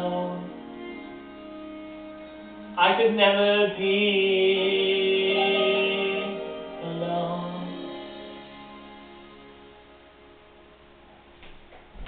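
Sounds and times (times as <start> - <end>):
backing accompaniment chord: 0.0 - 11.1.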